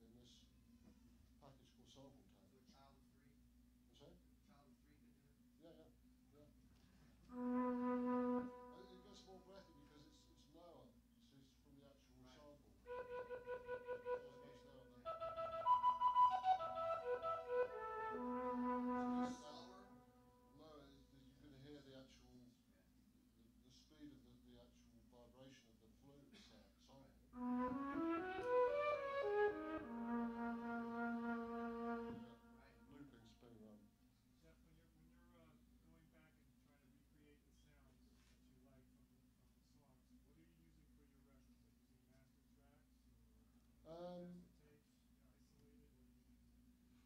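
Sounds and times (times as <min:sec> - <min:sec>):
flute-like keyboard note: 0:07.3 - 0:09.9, 0:12.9 - 0:20.3, 0:27.4 - 0:32.8.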